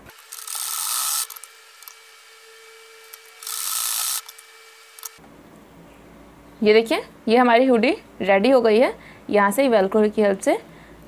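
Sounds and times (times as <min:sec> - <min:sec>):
sewing machine stitching: 0:00.0 - 0:02.0, 0:03.0 - 0:05.2.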